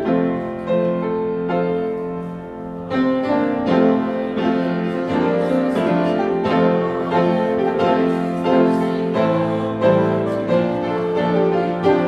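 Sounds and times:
piano playing hymn chords: 0:00.0 - 0:12.0.

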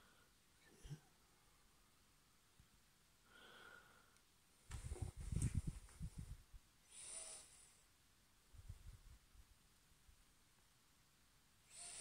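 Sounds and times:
breath hiss near microphone: 0:03.2 - 0:07.9, 0:11.6 - 0:12.0.

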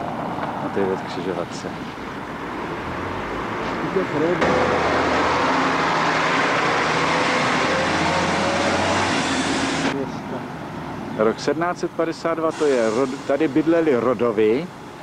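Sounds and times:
car passing by: 0:00.0 - 0:10.0.

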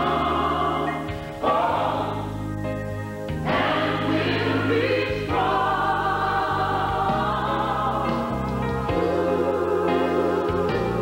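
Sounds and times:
church choir singing chords: 0:00.0 - 0:11.0.

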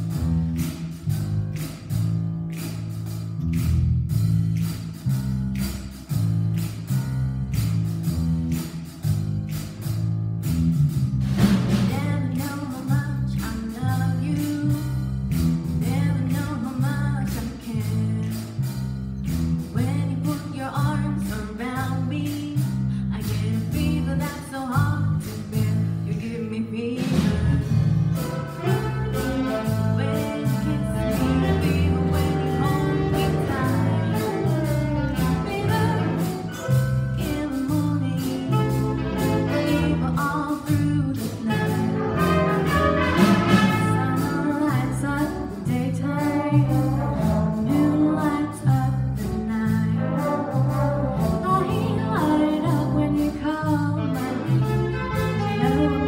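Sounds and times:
percussion beat: 0:00.0 - 0:26.1, 0:27.1 - 0:56.0
low bass notes: 0:00.0 - 0:56.0
higher melody: 0:28.1 - 0:40.5, 0:41.4 - 0:45.5.

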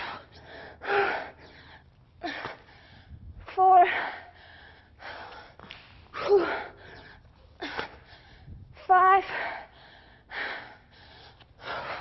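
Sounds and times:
woman breathing hard: 0:00.0 - 0:12.0.

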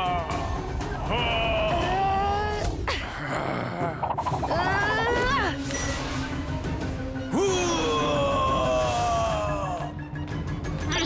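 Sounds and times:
wavering wordless vocal cry: 0:00.0 - 0:05.5, 0:07.3 - 0:10.0.

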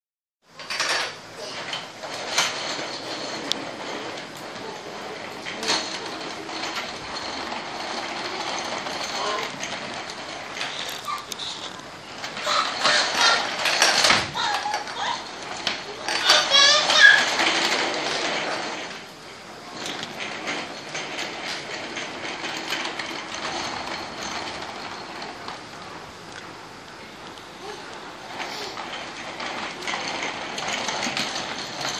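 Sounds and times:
baby walker wheels rattling on floor: 0:00.6 - 0:26.2, 0:27.6 - 0:31.9.

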